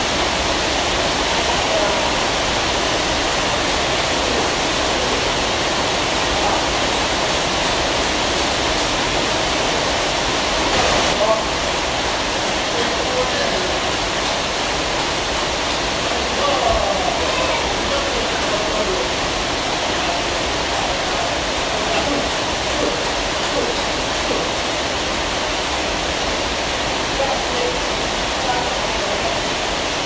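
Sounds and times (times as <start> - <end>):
loud rushing hiss: 0.0 - 30.0
faint voices: 16.0 - 24.6.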